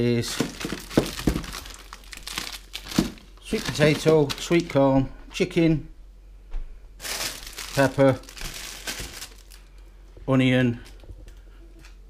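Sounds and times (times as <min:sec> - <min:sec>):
plastic bag crinkling: 0:00.0 - 0:04.8, 0:07.0 - 0:09.8.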